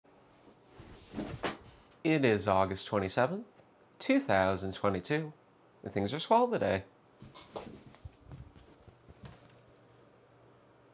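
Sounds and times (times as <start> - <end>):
office chair rustling and movement: 0.3 - 2.0, 7.2 - 9.9.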